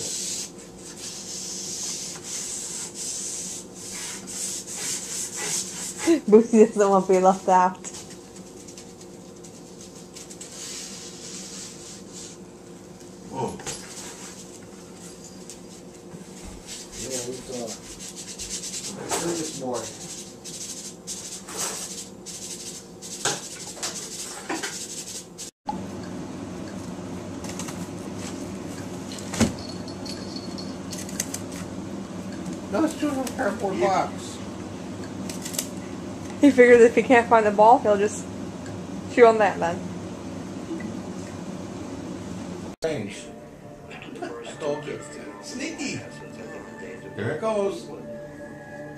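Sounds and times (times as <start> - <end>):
steady low hum: 25.7 - 48.9.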